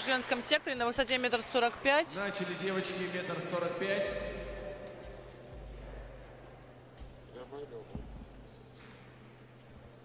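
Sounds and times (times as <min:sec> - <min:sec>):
echoing voice: 0:02.2 - 0:05.6.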